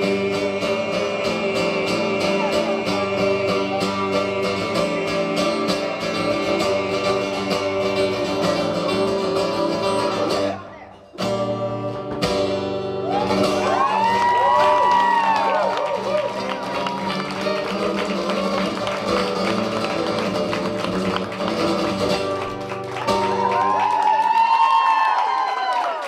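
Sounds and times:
man singing: 0.0s - 10.6s
acoustic guitar strumming: 0.0s - 23.8s
audience whistling and cheering: 13.0s - 21.3s, 22.6s - 26.0s.

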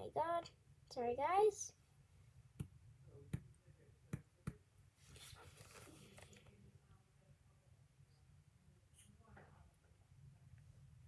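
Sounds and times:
faint rustle: 5.0s - 6.6s.

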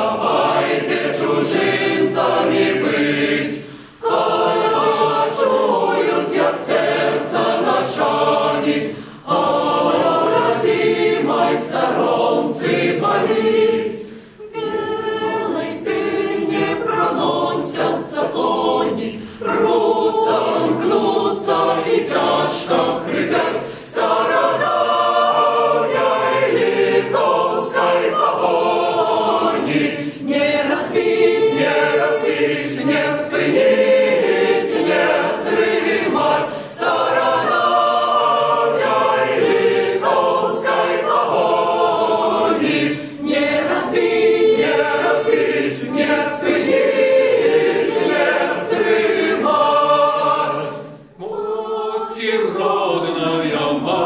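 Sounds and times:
mixed choir singing unaccompanied: 0.0s - 54.0s.

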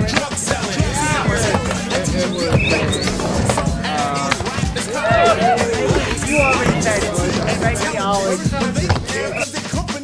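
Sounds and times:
skateboard knocks: 0.0s - 9.4s
skateboard rolling on a ramp: 0.0s - 9.4s
music with a voice: 0.0s - 10.0s.

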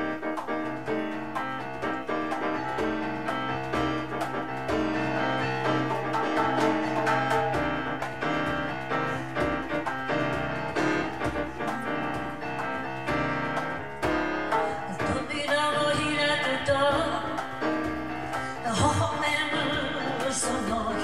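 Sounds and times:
grand piano playing: 0.0s - 21.0s
light hand percussion: 0.0s - 21.0s.

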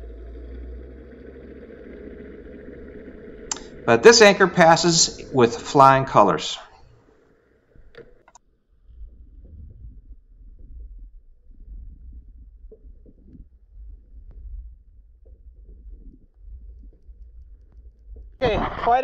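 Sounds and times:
muffled rumble of rushing water: 0.0s - 7.0s, 8.9s - 19.0s.

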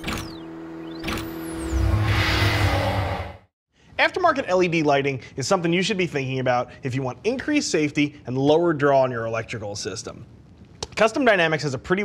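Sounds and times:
held low tone: 0.2s - 3.4s
whooshes sweeping in pitch: 0.8s - 3.5s
loud deep rumble: 1.6s - 3.5s.

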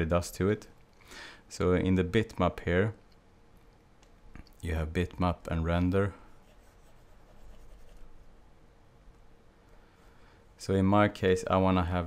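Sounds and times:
faint steady hum: 0.0s - 12.0s
stylus scratching on tablet: 6.3s - 8.3s.

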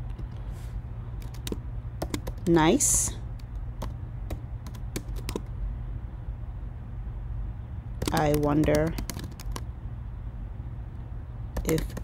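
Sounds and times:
steady low hum: 0.0s - 12.0s
computer keyboard keystrokes: 1.2s - 2.5s, 3.4s - 5.5s, 8.0s - 9.7s, 11.6s - 12.0s.

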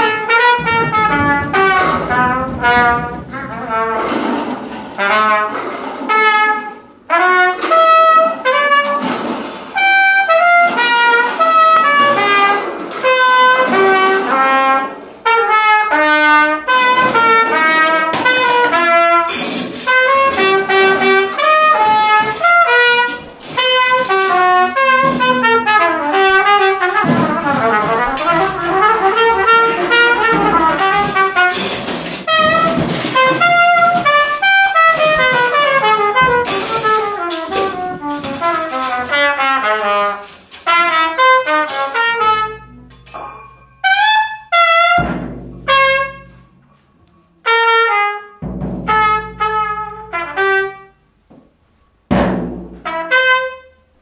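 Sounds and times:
floor tom strikes: 0.0s - 5.1s, 16.6s - 40.0s, 45.0s - 46.3s, 48.4s - 49.5s, 52.1s - 52.9s
trumpet playing fast runs: 0.0s - 9.1s, 9.8s - 43.1s, 43.8s - 46.4s, 47.5s - 51.0s, 52.8s - 53.9s.

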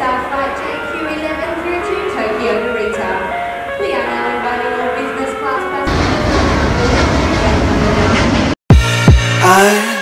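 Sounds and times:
jet engines roaring: 5.4s - 8.6s.

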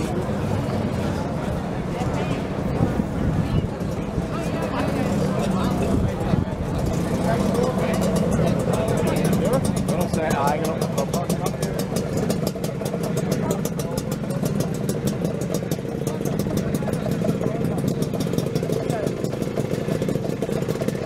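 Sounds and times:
crowd chatter: 0.0s - 21.0s
scooter engines idling: 0.0s - 21.0s.

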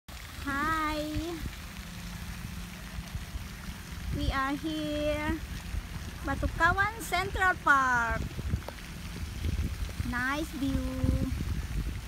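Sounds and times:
low hum: 0.1s - 12.0s
wind rumble on microphone: 0.4s - 1.8s, 2.9s - 12.0s.

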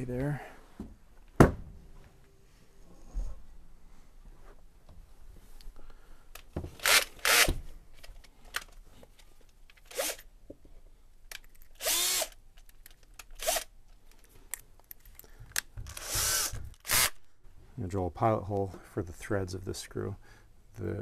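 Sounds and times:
cordless drill whirring: 6.8s - 7.6s, 9.9s - 10.2s, 11.8s - 12.4s, 13.4s - 13.7s, 15.9s - 17.2s.

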